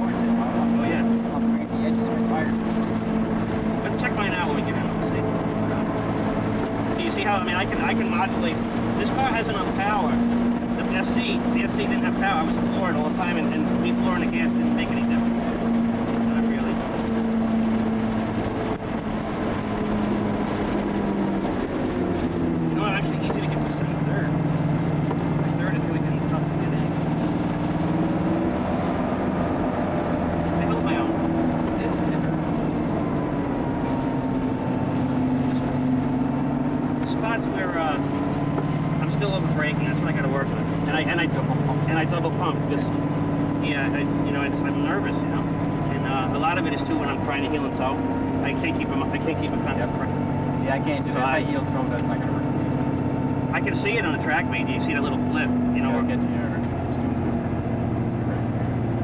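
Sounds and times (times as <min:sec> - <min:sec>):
car engine shifting gears: 0:00.0 - 0:59.0
road and wind noise: 0:00.0 - 0:59.0.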